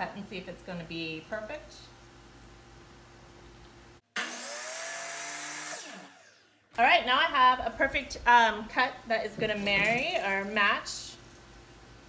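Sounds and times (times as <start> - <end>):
saw blade cutting wood: 4.2 - 6.4
miter saw whining: 4.2 - 6.5.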